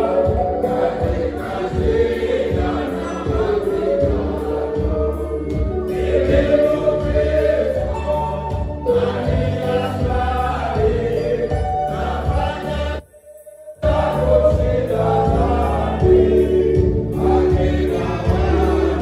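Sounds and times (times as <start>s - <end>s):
choir singing a hymn: 0.0s - 13.0s, 13.8s - 19.0s.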